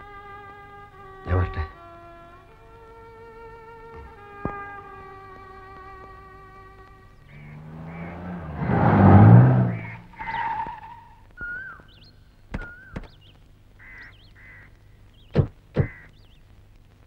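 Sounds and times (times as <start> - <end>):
small car engine: 4.6 - 11.2
bird chirps: 7.1 - 16.5.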